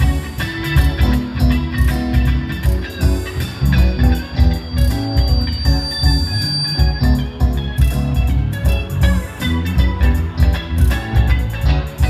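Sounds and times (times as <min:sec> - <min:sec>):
high steady tone: 0:00.0 - 0:10.8
rock band playing: 0:00.0 - 0:12.0.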